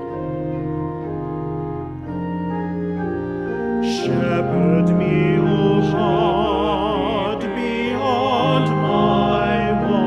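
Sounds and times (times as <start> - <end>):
church organ chords: 0.0 - 10.0
person singing: 3.8 - 10.0.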